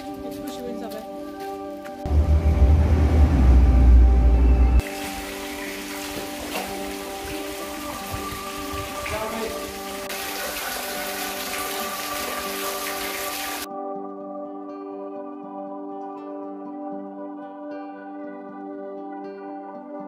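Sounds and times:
soft ambient music: 0.0s - 20.0s
loud low rumble: 2.1s - 4.8s
water trickling and splashing: 4.8s - 13.7s.

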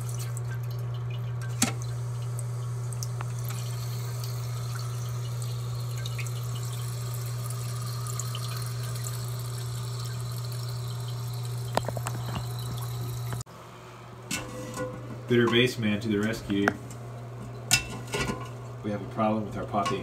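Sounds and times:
water dripping: 0.0s - 13.4s.

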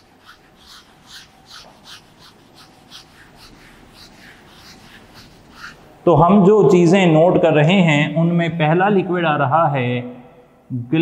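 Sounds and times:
eraser rubbing on whiteboard: 0.0s - 5.9s.

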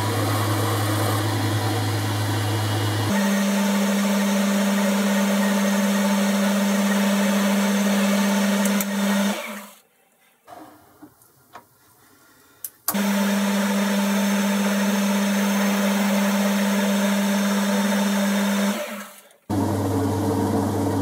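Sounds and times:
lathe running: 0.0s - 9.6s, 12.9s - 21.0s.

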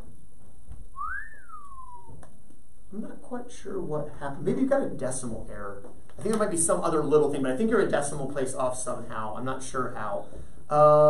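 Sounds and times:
person whistling a note: 1.0s - 2.2s.

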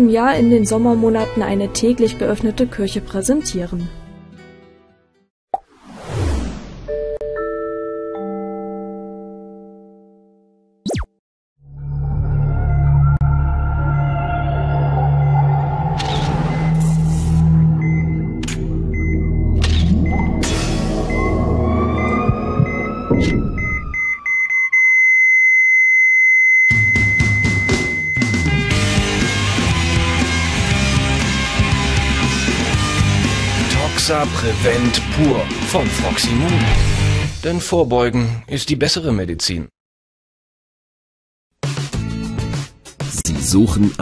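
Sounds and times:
guitar music: 0.5s - 5.2s, 28.2s - 37.3s
heart monitor beeping: 17.8s - 28.5s.

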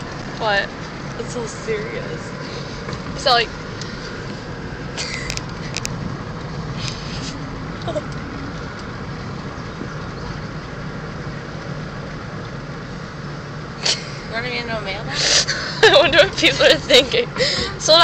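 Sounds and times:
car road and engine rumble: 0.0s - 18.0s.

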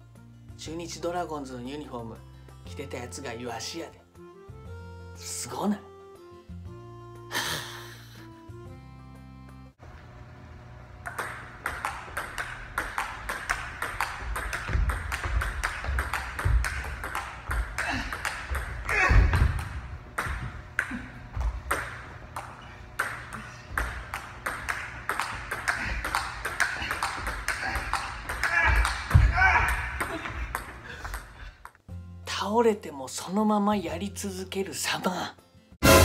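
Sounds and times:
table tennis ball clicking: 11.0s - 31.8s.

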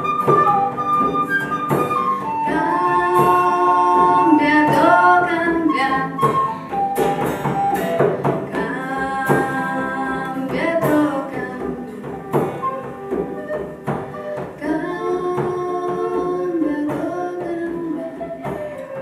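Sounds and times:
flute playing: 0.0s - 10.3s, 11.3s - 16.6s, 17.4s - 19.0s
hand-played frame drum: 0.0s - 19.0s
strummed acoustic guitar: 0.0s - 19.0s
woman singing: 2.1s - 19.0s.

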